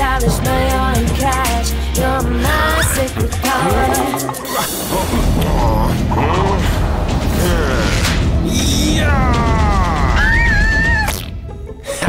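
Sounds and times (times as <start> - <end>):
creaking straining sounds: 0.0 - 11.3
background music with steady beat: 0.0 - 12.0.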